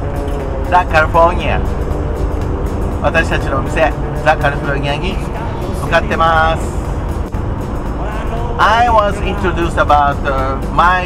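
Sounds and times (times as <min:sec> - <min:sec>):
engine and road noise: 0:00.0 - 0:11.0
person speaking: 0:03.1 - 0:06.7.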